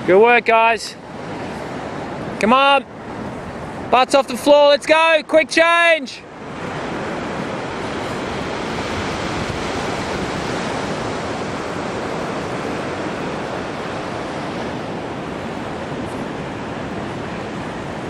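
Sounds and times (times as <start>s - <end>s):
ocean surf breaking: 0.0s - 18.0s.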